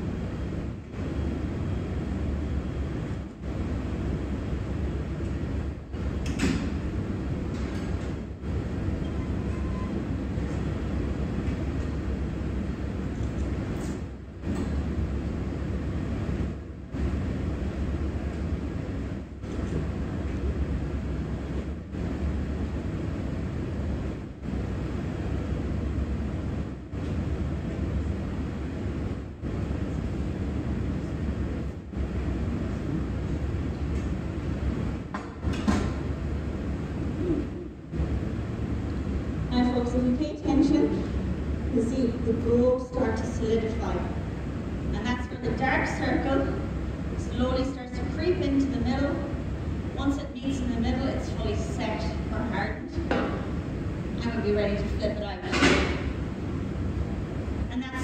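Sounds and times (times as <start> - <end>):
furnace roaring: 0.0 - 57.8.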